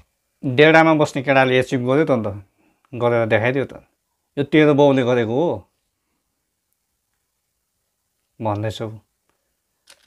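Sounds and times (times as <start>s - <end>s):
man speaking: 0.4s - 5.7s, 8.4s - 9.1s.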